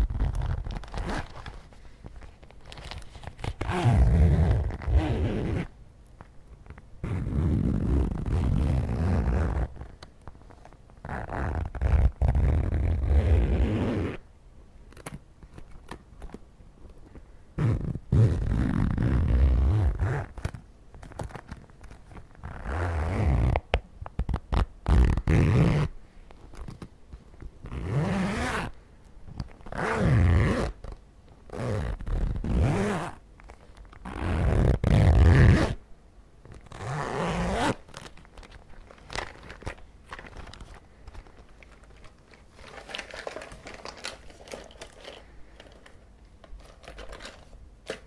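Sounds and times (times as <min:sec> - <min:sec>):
zipper opening and closing: 0:00.0 - 0:01.7, 0:02.9 - 0:05.8, 0:07.0 - 0:10.0, 0:11.0 - 0:14.2, 0:17.6 - 0:23.7, 0:24.3 - 0:26.0, 0:27.6 - 0:28.8, 0:29.6 - 0:35.8, 0:36.5 - 0:38.2.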